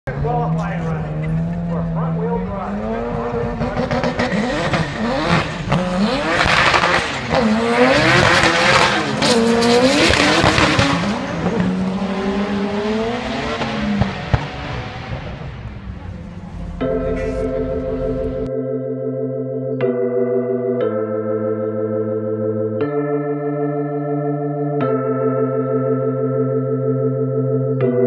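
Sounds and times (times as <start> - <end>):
racing car engines accelerating: 0.1 - 18.5.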